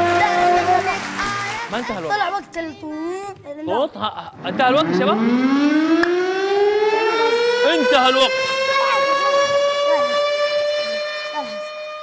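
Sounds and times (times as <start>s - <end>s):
rising siren wail: 4.3s - 12.0s.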